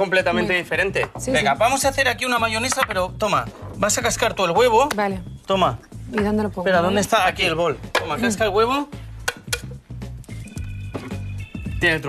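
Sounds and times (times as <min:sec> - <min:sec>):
background music with bass line: 0:00.0 - 0:12.0
eggshell tapped on glass jar: 0:02.6 - 0:03.1, 0:09.2 - 0:09.8.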